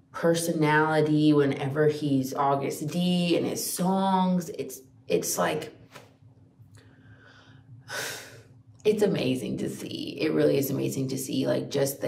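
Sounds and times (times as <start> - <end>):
woman breathing in: 6.8 - 8.5.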